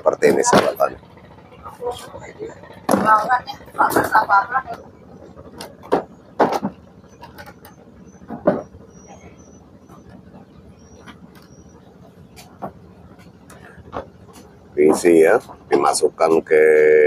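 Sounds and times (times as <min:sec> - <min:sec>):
steady low hum: 0:00.0 - 0:17.0
knocks and thumps on wooden boats: 0:00.2 - 0:01.4, 0:02.6 - 0:16.1.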